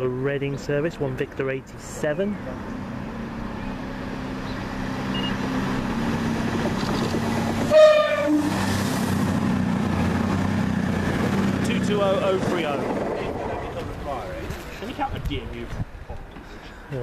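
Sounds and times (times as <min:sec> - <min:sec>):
diesel train engines droning: 0:00.0 - 0:17.0
two-tone train horn: 0:07.7 - 0:08.7.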